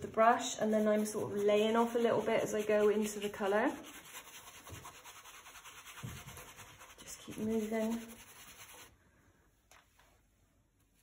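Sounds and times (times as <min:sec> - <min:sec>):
paintbrush scrubbing on paper: 0:00.4 - 0:09.0.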